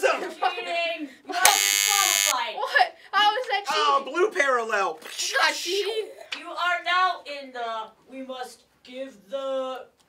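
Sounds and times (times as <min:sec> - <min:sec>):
game-show buzzer: 0:01.5 - 0:02.3.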